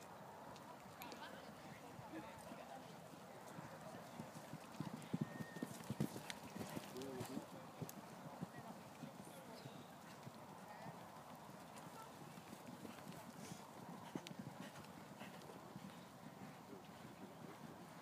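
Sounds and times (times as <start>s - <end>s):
horse hoofbeats on sand: 3.5s - 8.7s, 11.5s - 18.0s.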